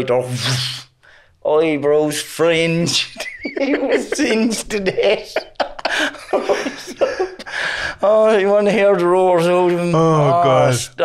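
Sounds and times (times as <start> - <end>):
men laughing: 2.8 - 11.0.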